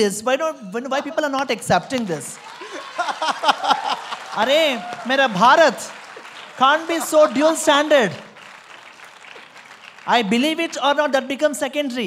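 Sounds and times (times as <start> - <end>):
audience applause: 2.2 - 11.3.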